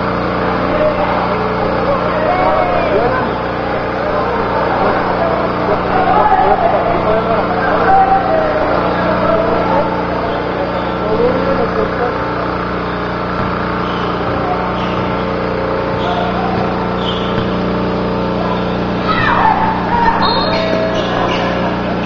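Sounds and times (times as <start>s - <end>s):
indistinct voices: 0.0s - 22.0s
steady mechanical hum: 0.0s - 22.0s.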